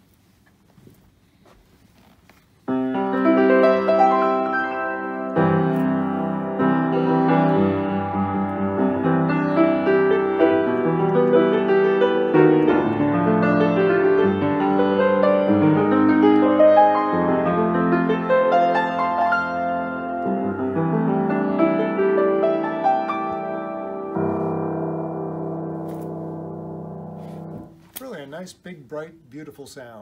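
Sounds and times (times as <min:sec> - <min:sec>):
grand piano chords: 0:02.7 - 0:27.9.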